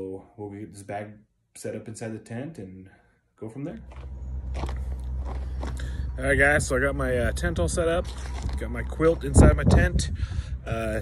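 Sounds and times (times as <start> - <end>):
wind buffeting microphone: 4.4 - 11.0
crunches and scrapes: 8.0 - 9.3.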